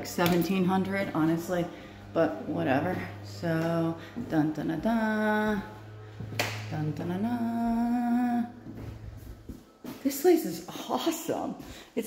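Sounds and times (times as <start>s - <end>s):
woman humming a tune: 6.8s - 8.8s.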